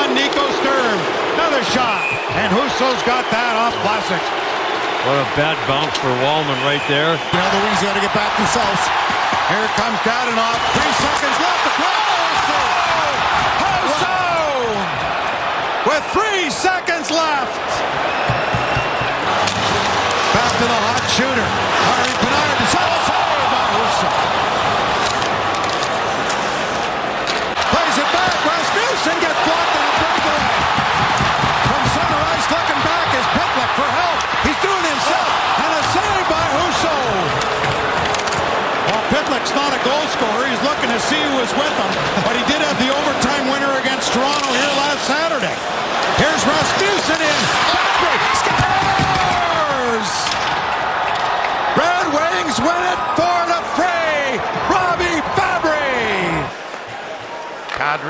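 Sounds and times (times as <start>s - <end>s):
arena crowd voices: 0.0s - 58.0s
hockey sticks and puck clacking: 5.6s - 6.2s, 7.3s - 14.5s, 18.2s - 56.9s.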